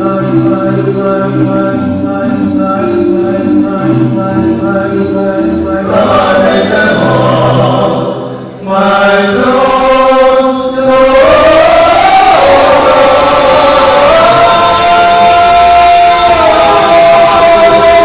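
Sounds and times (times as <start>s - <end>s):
male quartet singing a cappella: 0.0s - 18.0s.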